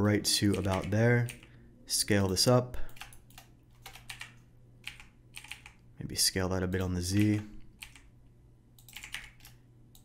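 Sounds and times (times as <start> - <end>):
computer keyboard clicks: 2.9 - 5.8, 7.1 - 8.1, 8.8 - 10.0.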